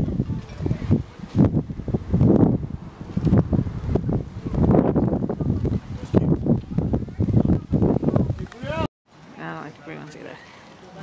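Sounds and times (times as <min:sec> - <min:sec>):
wind buffeting microphone: 0:00.0 - 0:08.9.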